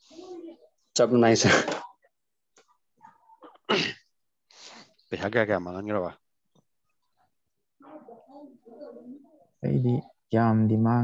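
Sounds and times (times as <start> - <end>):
person sneezing: 3.4 - 4.0.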